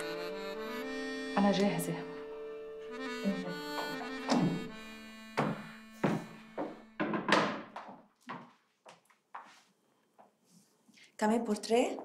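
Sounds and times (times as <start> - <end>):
high heels on stone tiles: 3.4 - 9.6.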